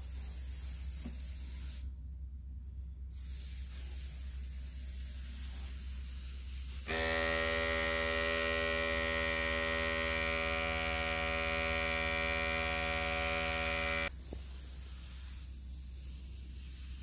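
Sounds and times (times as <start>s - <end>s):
electric pump motor humming: 6.9s - 14.1s.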